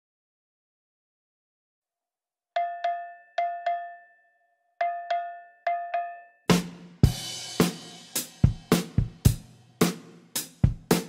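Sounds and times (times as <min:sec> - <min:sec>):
cowbell strikes: 0:02.6 - 0:06.5.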